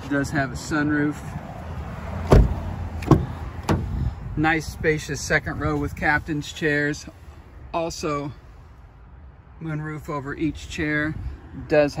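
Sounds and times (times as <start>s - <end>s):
car door thump: 2.2s - 4.0s
car door latch clicks: 2.3s - 3.9s.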